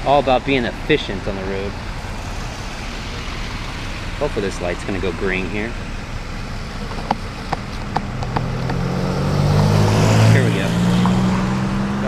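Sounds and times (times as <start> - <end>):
tyres hissing on wet road: 0.0 - 11.2
low engine rumble: 0.0 - 11.4.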